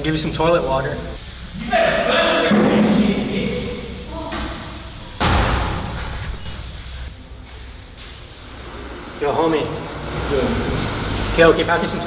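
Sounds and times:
loud door slam echoing: 5.2 - 6.6.

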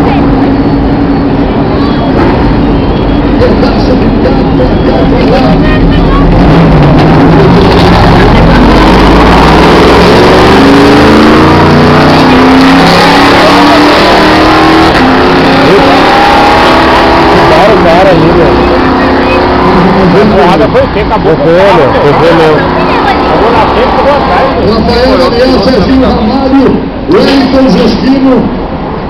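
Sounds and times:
race car engines accelerating: 0.0 - 29.0.

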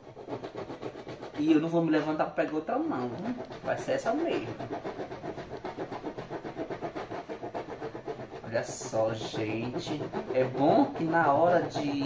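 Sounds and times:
knife sawing through plastic: 0.0 - 12.0.

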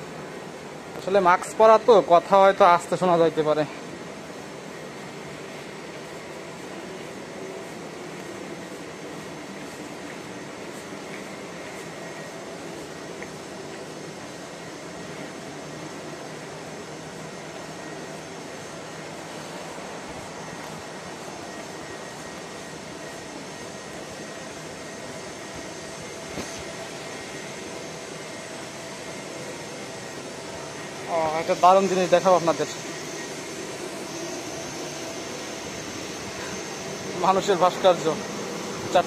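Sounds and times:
faint high whine: 0.0 - 39.0
rushing outdoor noise: 0.0 - 39.0
steady hum and hiss: 0.0 - 39.0.

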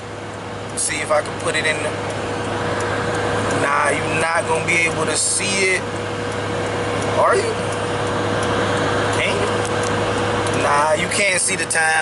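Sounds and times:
vehicle cabin road noise: 0.0 - 12.0.

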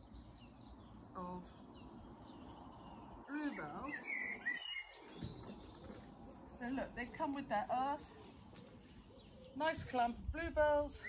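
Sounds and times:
songbirds singing: 0.0 - 11.0.

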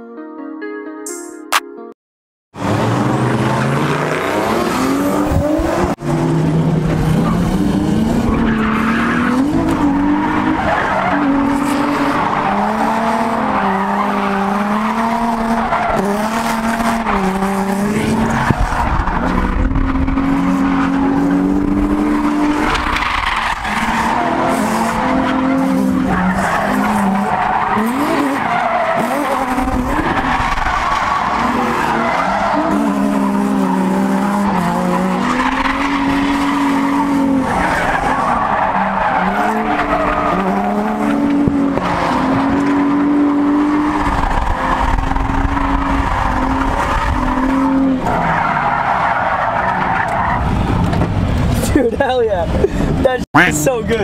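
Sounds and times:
car engine at high revs: 2.6 - 54.0.

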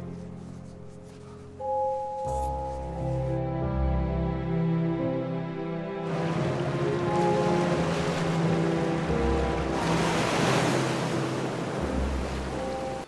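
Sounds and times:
soft music with long held notes: 0.0 - 13.0
waves washing: 6.0 - 13.0.

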